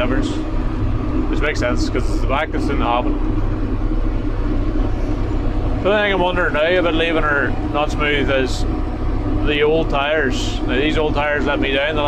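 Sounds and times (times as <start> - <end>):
tractor diesel engine drone: 0.0 - 12.0.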